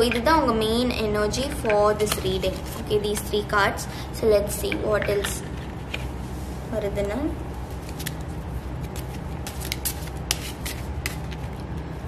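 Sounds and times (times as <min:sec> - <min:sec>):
steady low hum: 0:00.0 - 0:12.0
cards shuffling: 0:02.0 - 0:03.3, 0:07.7 - 0:11.8.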